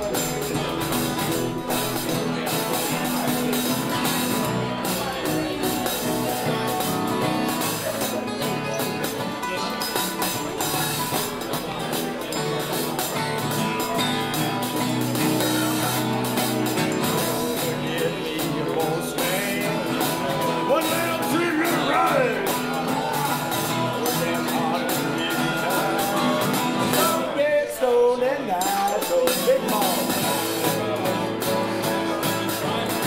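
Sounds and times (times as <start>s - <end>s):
guitars playing blues: 0.0s - 33.0s.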